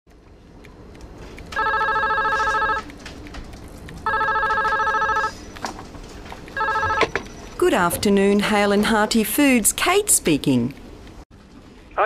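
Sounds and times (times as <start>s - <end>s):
telephone ringing: 1.6s - 2.9s, 4.0s - 5.4s, 6.6s - 7.2s.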